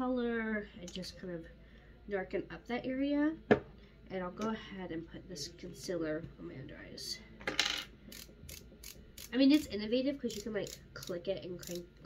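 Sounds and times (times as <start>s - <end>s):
plastic ratchet clicks: 10.3s - 11.8s.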